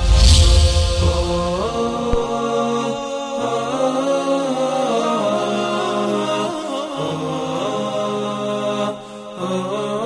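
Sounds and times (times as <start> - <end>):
choral vocal chant: 0.0 - 10.0.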